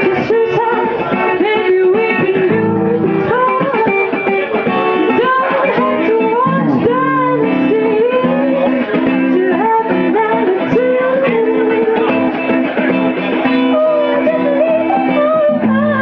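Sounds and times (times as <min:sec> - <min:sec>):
live band with lead guitar: 0:00.0 - 0:16.0.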